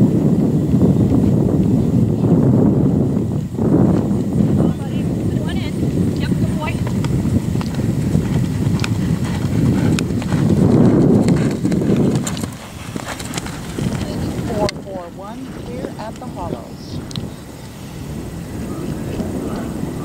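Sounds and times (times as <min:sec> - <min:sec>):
horse galloping on turf: 0:00.0 - 0:19.9.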